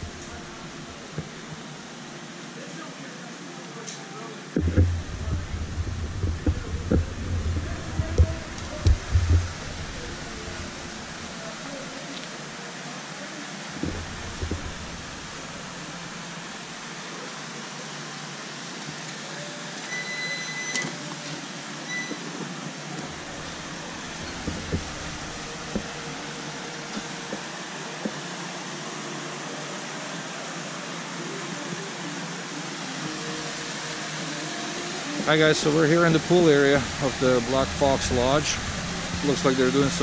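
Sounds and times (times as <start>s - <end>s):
machine-like whooshing noise: 4.6s - 11.9s.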